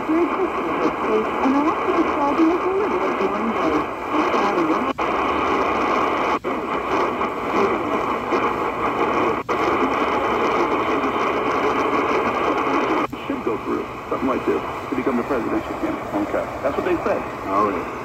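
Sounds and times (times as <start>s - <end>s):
radio static: 0.0s - 18.0s
radio talk: 0.0s - 18.0s.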